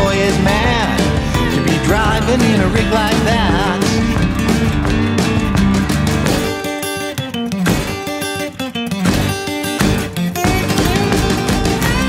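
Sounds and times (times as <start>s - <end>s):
electric bass: 0.0s - 6.6s, 9.1s - 12.0s
drum kit: 0.0s - 6.8s, 7.6s - 8.1s, 9.0s - 12.0s
acoustic guitars strumming: 0.0s - 12.0s.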